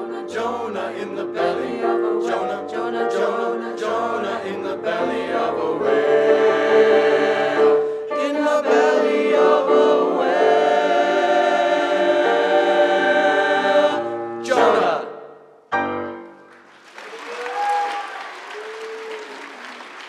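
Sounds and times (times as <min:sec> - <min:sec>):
mixed choir singing in harmony: 0:00.0 - 0:15.3.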